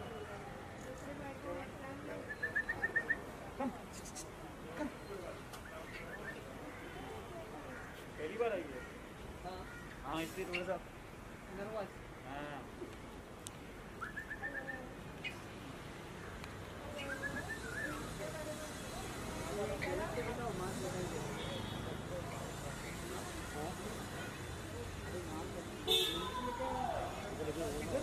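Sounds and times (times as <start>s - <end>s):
voices talking: 0.0s - 28.0s.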